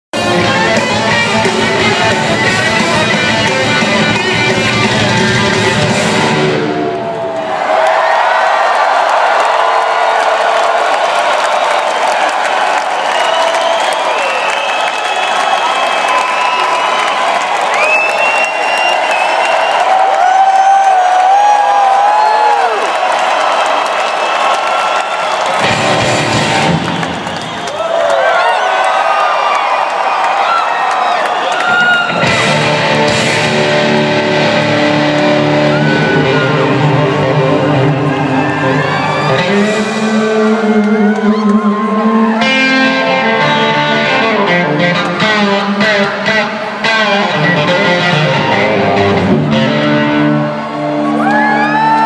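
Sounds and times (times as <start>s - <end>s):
crowd noise: 0.0s - 52.0s
rock band playing: 0.1s - 7.1s, 25.4s - 27.5s, 31.7s - 52.0s
electric guitar solo: 31.7s - 52.0s.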